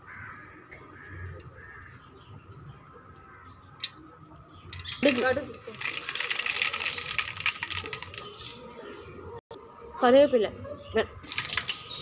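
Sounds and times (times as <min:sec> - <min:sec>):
hot oil sizzling and spattering: 0:04.7 - 0:08.6, 0:11.2 - 0:12.0.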